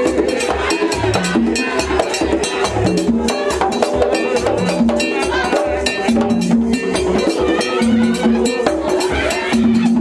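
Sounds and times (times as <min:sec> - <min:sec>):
drums playing fast dance rhythm: 0:00.0 - 0:10.0.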